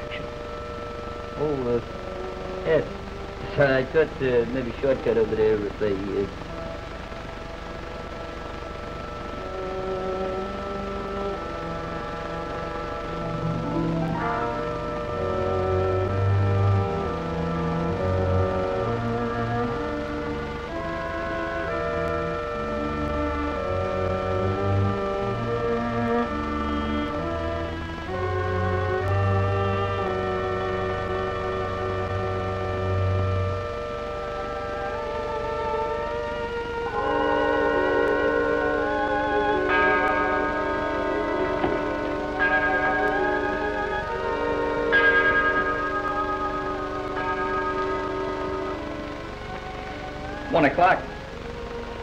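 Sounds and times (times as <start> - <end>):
low bass line: 0.0 - 52.0
slow orchestral film music: 0.0 - 52.0.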